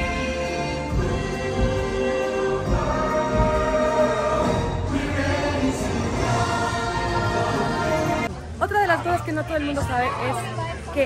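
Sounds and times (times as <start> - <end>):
group of voices singing: 0.0 - 8.3.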